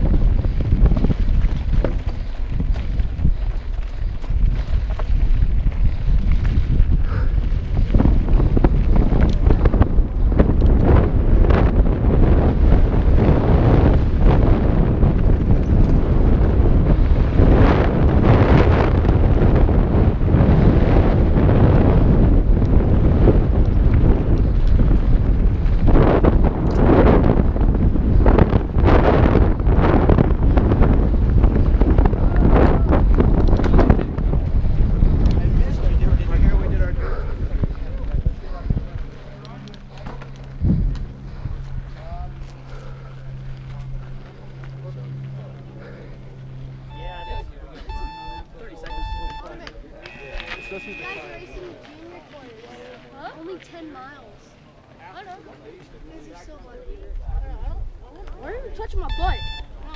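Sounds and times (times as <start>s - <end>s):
bike tyres and frame rattling: 0.0s - 47.7s
wind buffeting microphone: 0.0s - 59.9s.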